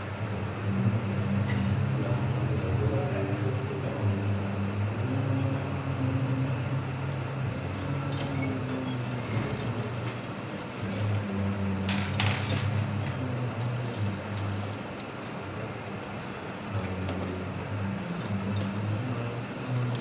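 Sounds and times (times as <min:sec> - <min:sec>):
low male voices chanting: 0:00.0 - 0:14.8, 0:16.6 - 0:20.0.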